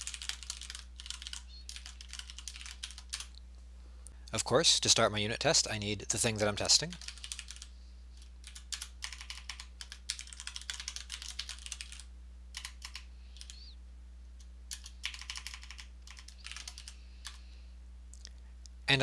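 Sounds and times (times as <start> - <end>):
computer keyboard typing: 0.0 - 3.4, 6.8 - 7.7, 8.4 - 13.6, 14.7 - 17.4
faint low hum: 0.0 - 19.0.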